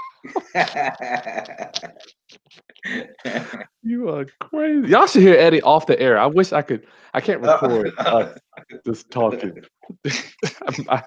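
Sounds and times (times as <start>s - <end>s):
man laughing: 0.3s - 2.0s, 2.9s - 3.6s, 4.7s - 5.5s, 7.3s - 11.0s.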